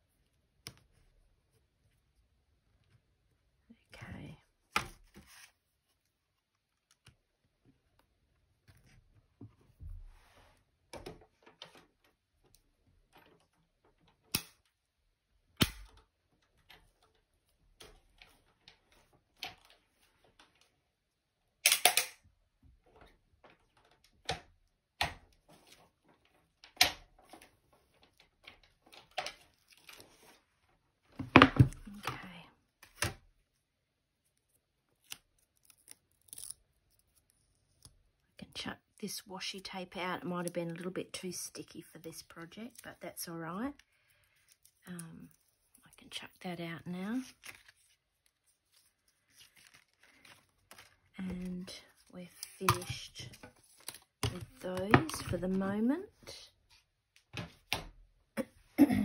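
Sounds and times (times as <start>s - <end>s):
paper rustling: 47.0s - 55.6s.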